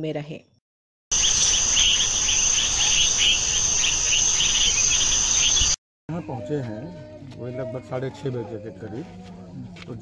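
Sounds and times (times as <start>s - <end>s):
crickets chirping: 1.1s - 5.8s.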